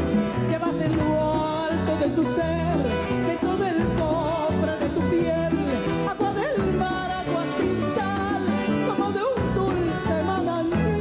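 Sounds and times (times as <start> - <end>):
instrumental accompaniment: 0.0 - 11.0
woman singing: 0.0 - 11.0.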